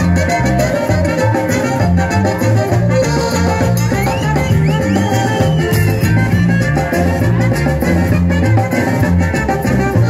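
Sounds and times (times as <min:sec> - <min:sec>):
live band playing latin dance music: 0:00.0 - 0:10.0.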